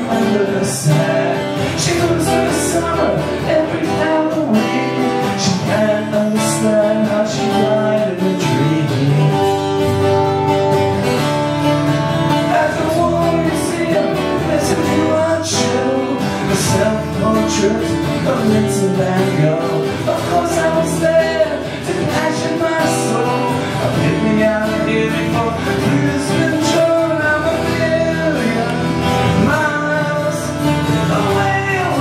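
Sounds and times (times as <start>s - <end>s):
man singing: 0.0s - 10.4s, 11.8s - 32.0s
acoustic guitars strummed: 0.0s - 32.0s.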